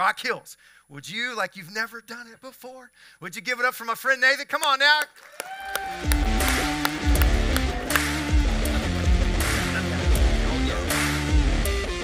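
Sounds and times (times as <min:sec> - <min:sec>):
band with guitar bass and drums: 0:06.0 - 0:12.0.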